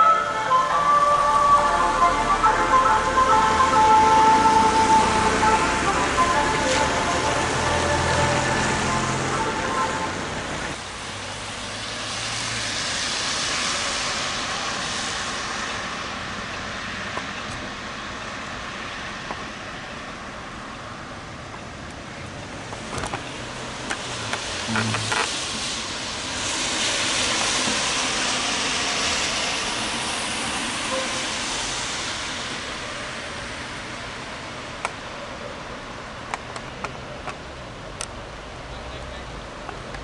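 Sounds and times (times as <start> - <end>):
car tyres hissing on wet road: 0.0 - 40.0
traffic noise: 0.0 - 40.0.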